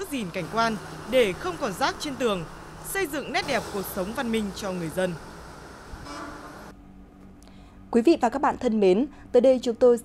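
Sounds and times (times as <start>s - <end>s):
roadside traffic: 0.0s - 7.1s
vehicle horn: 6.0s - 6.7s.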